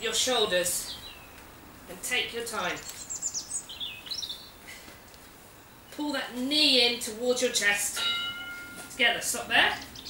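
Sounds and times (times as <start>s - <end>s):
bird chirping: 0.0s - 4.8s, 8.0s - 10.0s
outdoor background hiss: 0.0s - 10.0s.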